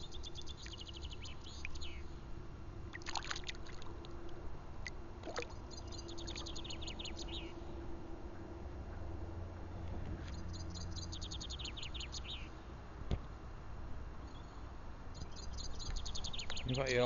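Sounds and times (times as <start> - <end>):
songbird singing: 0.0 - 2.3, 4.8 - 7.8, 10.2 - 12.6, 14.2 - 17.0.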